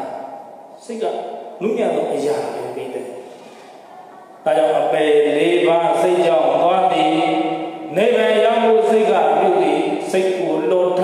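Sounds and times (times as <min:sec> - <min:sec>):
monk chanting: 0:04.5 - 0:11.0.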